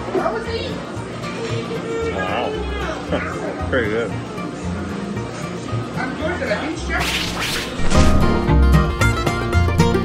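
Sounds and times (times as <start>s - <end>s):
background music: 0.0s - 10.0s
swish sound effect: 7.0s - 8.2s.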